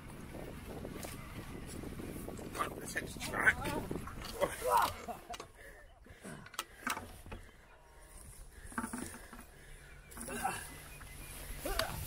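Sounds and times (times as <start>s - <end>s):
bicycle clicks and rattles: 6.4s - 7.4s, 8.1s - 11.1s
grass rustling: 6.8s - 12.0s.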